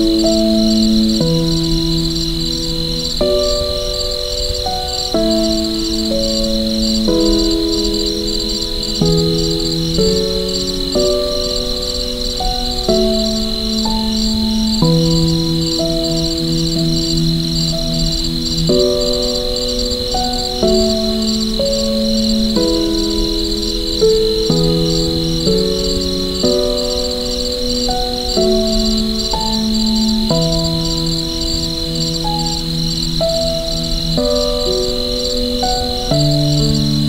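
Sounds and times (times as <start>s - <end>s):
crickets chirping: 0.0s - 37.0s
soft slow piano: 0.0s - 37.0s.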